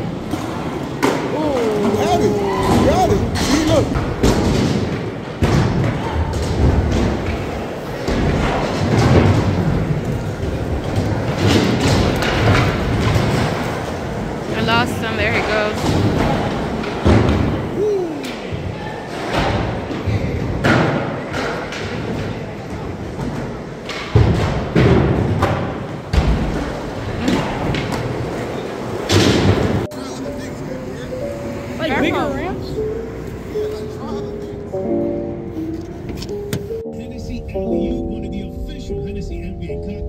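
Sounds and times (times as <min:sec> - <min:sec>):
skateboard wheels rolling: 0:00.0 - 0:14.5, 0:15.7 - 0:34.8
skateboards thumping on concrete: 0:15.7 - 0:29.9.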